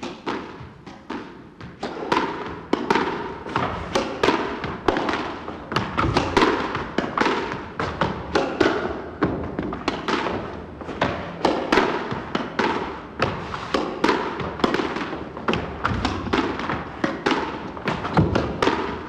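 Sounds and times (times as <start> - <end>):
squash ball impacts: 0.0 - 19.0.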